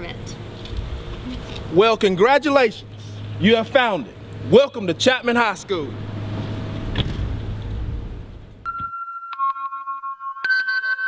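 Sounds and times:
steady low hum: 0.0s - 8.7s.

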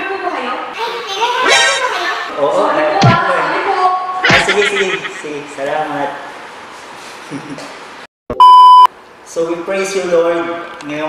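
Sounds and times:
electronic beep: 8.3s - 8.9s.

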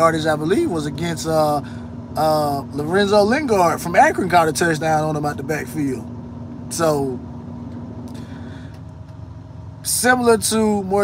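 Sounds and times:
constant low hum: 0.0s - 11.0s
truck engine idling: 0.0s - 11.0s.

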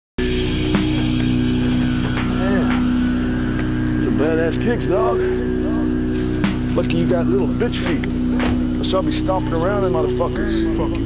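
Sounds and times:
dark electronic music: 0.2s - 11.0s.

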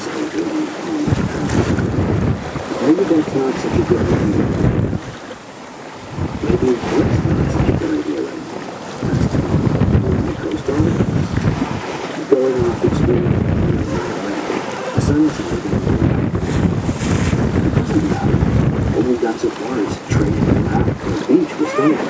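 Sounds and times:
gusty wind buffeting microphone: 0.0s - 22.0s
sea noise: 0.0s - 22.0s.

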